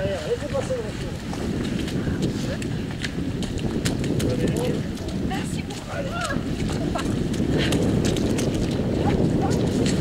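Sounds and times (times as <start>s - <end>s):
feet splashing through mud: 0.8s - 10.0s.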